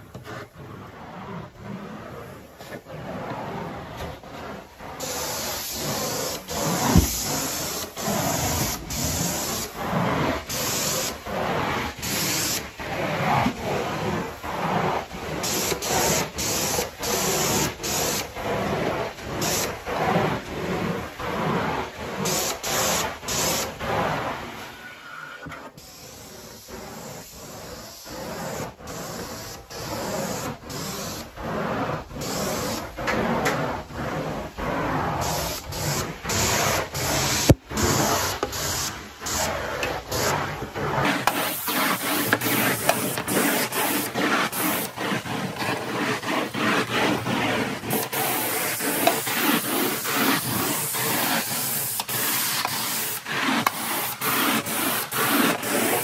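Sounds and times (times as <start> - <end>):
spraying rubbing hiss: 4.2 - 20.5, 22.2 - 24.2, 25.7 - 56.0.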